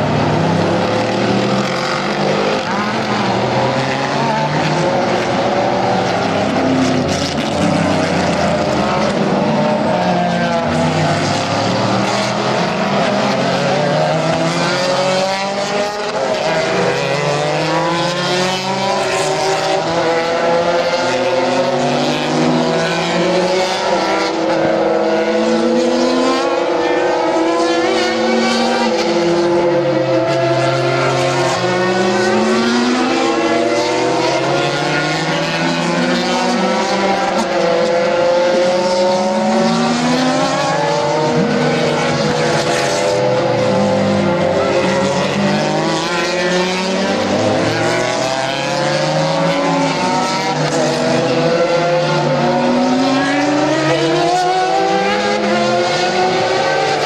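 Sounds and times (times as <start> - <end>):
racing car engines: 0.0 - 57.0.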